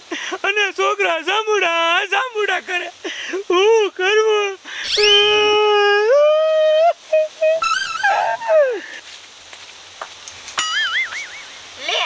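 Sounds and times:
man crying out: 4.8s - 8.9s.

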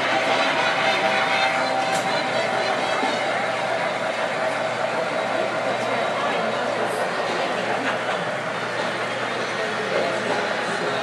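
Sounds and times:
electric model trains running: 0.0s - 11.0s
murmuring visitors: 0.0s - 11.0s.

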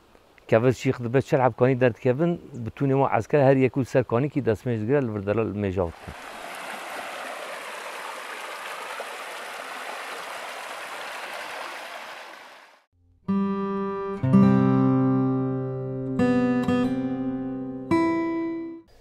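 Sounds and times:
stream water running over rocks: 4.3s - 12.9s
plucked string music: 13.2s - 18.8s.

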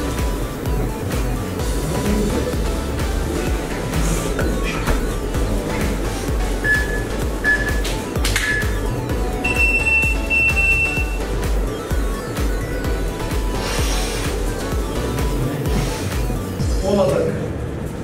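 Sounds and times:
background music with low beat: 0.0s - 17.8s.

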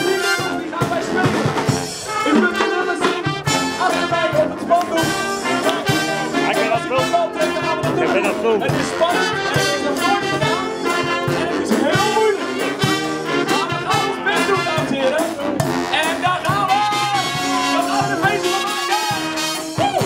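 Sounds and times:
street brass band playing: 0.0s - 20.0s.

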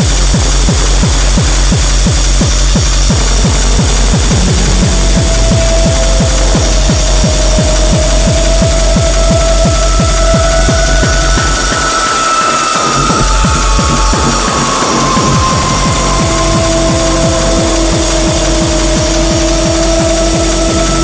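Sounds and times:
fast electronic dance music: 0.0s - 21.0s.

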